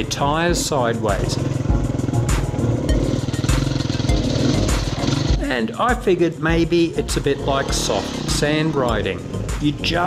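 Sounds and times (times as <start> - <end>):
dirt bike engine running: 0.0 - 10.0
music with steady beat: 1.4 - 10.0.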